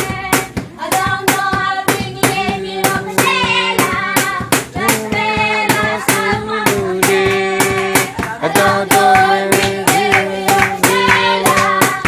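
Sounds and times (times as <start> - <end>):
children singing: 0.0 - 12.0
children clapping in time: 6.7 - 12.0.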